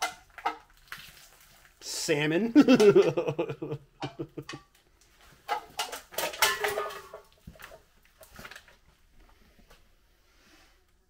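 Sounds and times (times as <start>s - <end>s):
man laughing: 2.4s - 4.6s.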